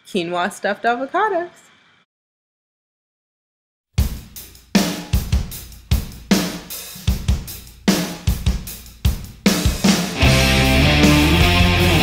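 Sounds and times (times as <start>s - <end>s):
rock drum kit beat: 4.0s - 12.0s.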